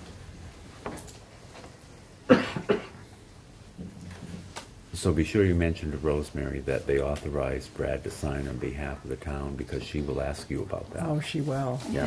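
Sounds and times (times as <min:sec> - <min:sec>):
person coughing: 0:02.3 - 0:03.0.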